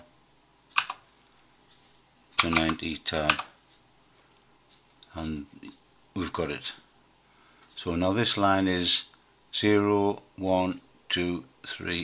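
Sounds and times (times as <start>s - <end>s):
computer keyboard keystroke: 0.8s - 1.0s.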